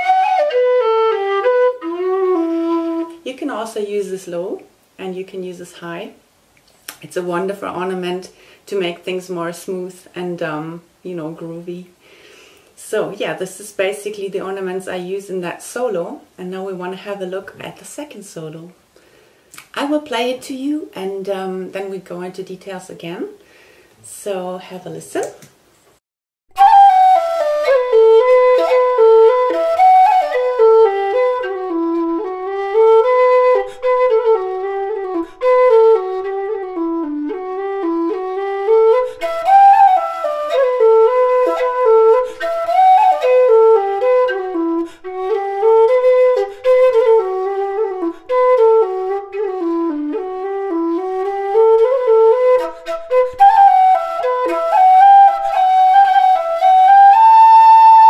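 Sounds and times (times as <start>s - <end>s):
low whistle folk melody: 0.0s - 3.2s, 26.5s - 58.0s.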